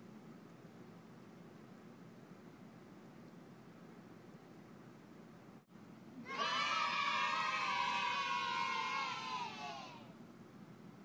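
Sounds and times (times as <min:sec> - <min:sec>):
children shouting: 0:06.2 - 0:10.2.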